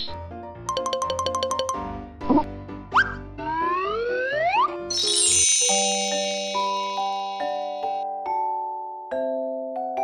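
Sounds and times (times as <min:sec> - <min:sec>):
light background music: 0:00.0 - 0:08.6
rising whistle-like glide: 0:03.6 - 0:07.2
bright shimmering chime: 0:04.9 - 0:08.0.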